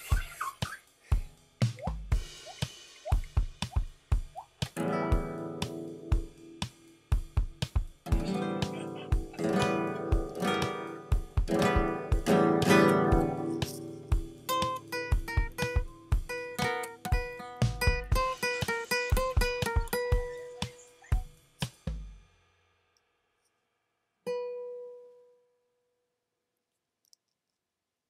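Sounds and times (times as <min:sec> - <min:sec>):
acoustic guitar playing: 0:04.7 - 0:07.0, 0:08.0 - 0:21.3, 0:24.3 - 0:25.4
sharp percussive knocks: 0:09.2 - 0:15.9, 0:16.6 - 0:21.3.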